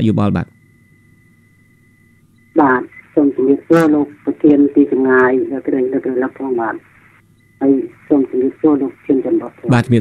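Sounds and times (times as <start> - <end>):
faint steady high tone: 0.0 - 9.8
person speaking over phone line: 2.6 - 6.8, 7.6 - 10.0.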